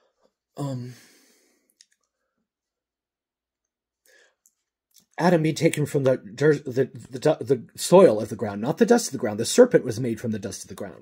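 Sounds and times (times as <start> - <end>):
faint breath: 0.0 - 2.3, 4.0 - 4.4.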